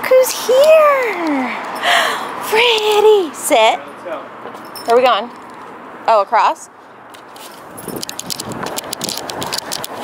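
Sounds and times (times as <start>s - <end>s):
camera handling rustle: 7.0s - 10.0s.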